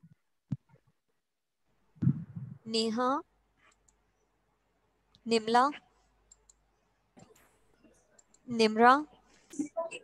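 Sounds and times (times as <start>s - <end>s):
woman speaking: 2.6s - 3.3s, 5.2s - 5.8s, 8.5s - 10.0s.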